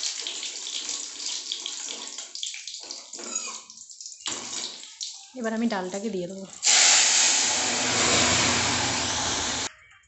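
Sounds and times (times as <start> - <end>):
food sizzling in hot oil: 0.0 - 9.7.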